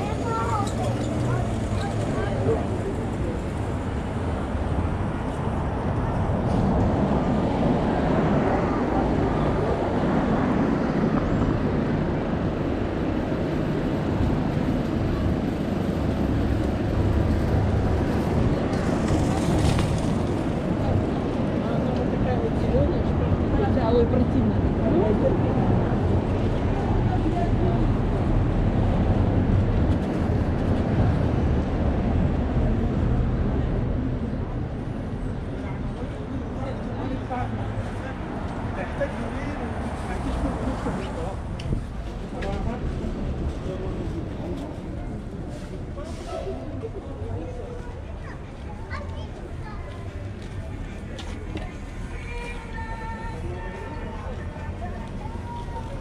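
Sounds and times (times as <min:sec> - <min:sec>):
passersby talking: 0:00.0 - 0:56.0
road traffic rumble: 0:00.0 - 0:56.0.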